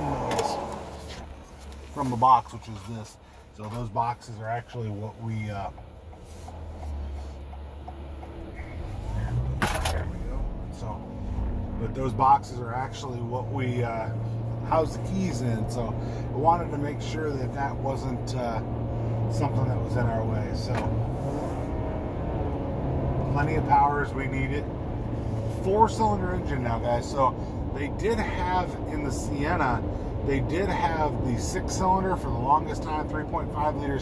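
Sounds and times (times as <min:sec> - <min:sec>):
road noise inside car: 0:00.0 - 0:34.0.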